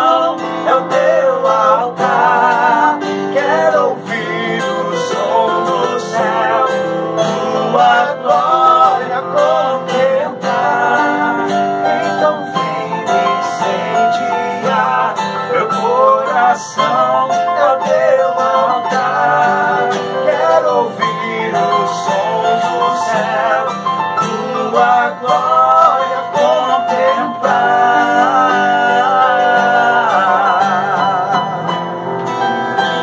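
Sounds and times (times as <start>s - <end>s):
keyboard: 0.0s - 33.0s
strummed acoustic guitar: 0.0s - 33.0s
two men singing: 0.0s - 33.0s.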